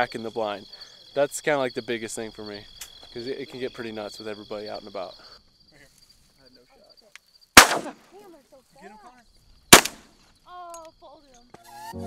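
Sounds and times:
shotgun blast: 7.6s - 8.0s, 9.7s - 10.0s.

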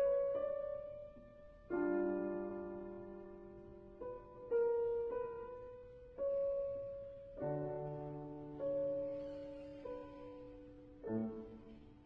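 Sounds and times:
slow piano notes: 0.0s - 12.0s.

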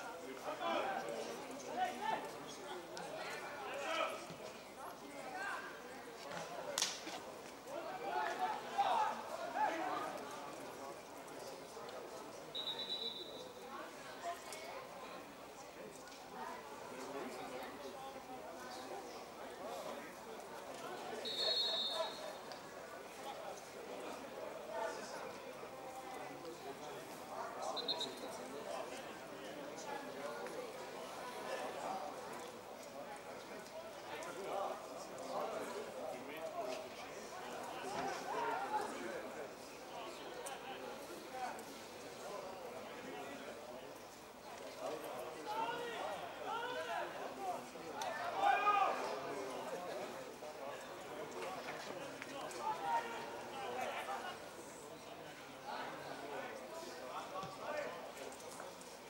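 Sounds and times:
crowd shouts and calls: 3.0s - 10.3s, 44.6s - 49.6s, 51.4s - 54.6s.

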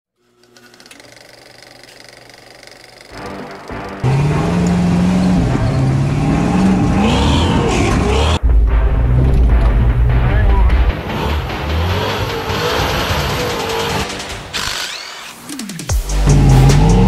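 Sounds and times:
truck engine revving: 1.6s - 17.0s.

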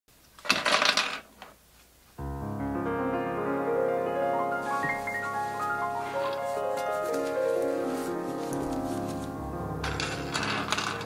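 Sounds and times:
plastic cartridges clattering on table: 0.4s - 1.3s, 9.8s - 11.0s.

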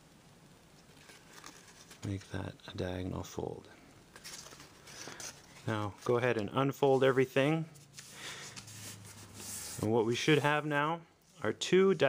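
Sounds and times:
paper rustling: 0.8s - 2.8s, 4.1s - 10.4s.

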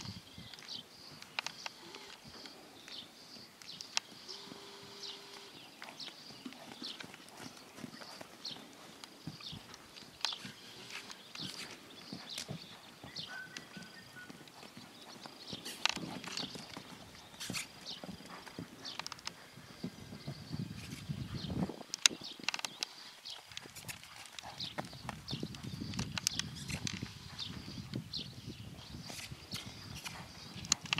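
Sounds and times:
hoofbeats on sand: 0.1s - 30.9s.

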